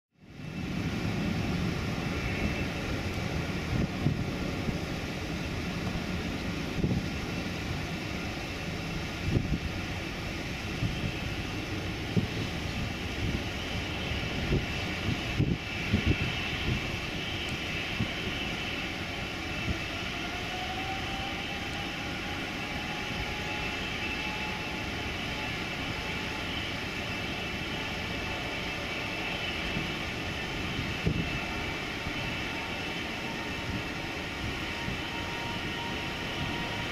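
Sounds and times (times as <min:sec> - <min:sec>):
jet engines whining: 0:00.2 - 0:36.9.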